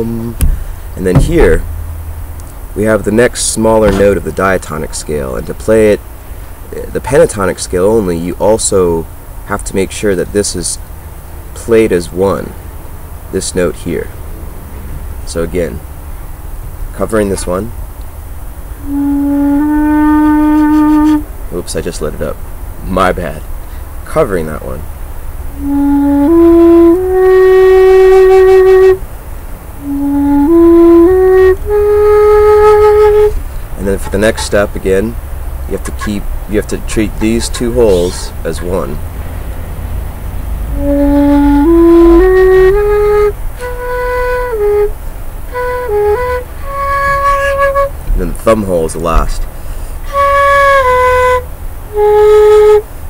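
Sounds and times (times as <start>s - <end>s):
end-blown flute held notes: 0.0s - 1.7s, 40.7s - 44.9s
wooden flute melody: 0.0s - 1.9s, 3.8s - 4.4s, 18.8s - 21.3s, 25.5s - 29.0s, 29.8s - 39.0s, 40.7s - 48.1s, 50.0s - 52.9s.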